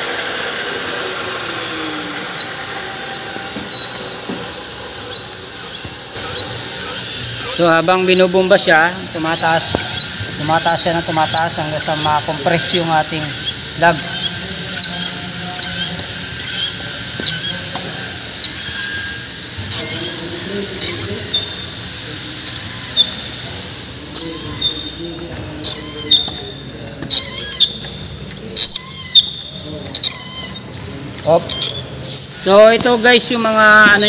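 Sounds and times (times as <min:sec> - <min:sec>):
steady high whine: 0:00.0 - 0:34.0
hydraulic crimper squeaks: 0:00.2 - 0:34.0.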